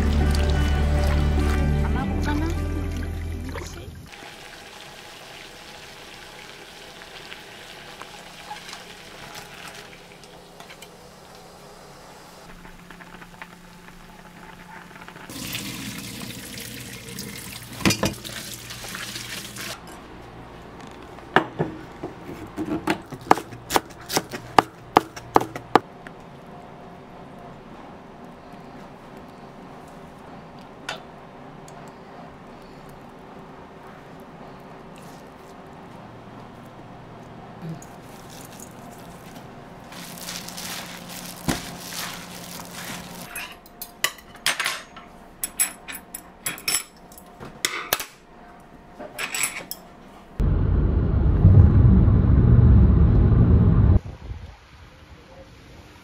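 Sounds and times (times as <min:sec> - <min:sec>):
steady low hum: 0:50.2 - 0:55.8.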